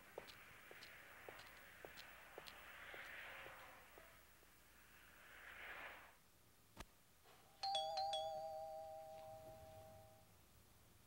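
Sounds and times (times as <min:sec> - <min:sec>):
two-tone doorbell chime: 0:07.6 - 0:10.3.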